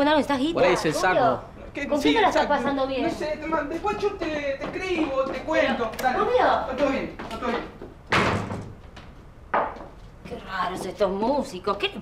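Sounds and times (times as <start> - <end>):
wooden door slamming: 8.1 - 8.8.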